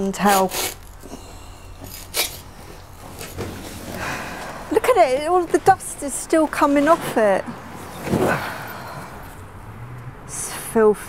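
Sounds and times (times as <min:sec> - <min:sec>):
carpet tearing and rasping: 0:00.2 - 0:01.1, 0:01.8 - 0:03.8.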